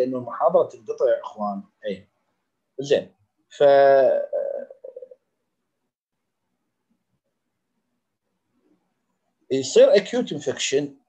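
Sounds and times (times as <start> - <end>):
man mumbling: 3.6 - 5.2.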